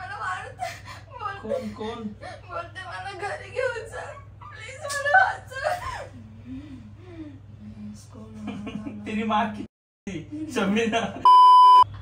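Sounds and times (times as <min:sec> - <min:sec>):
censor bleep: 0:11.3 - 0:11.9.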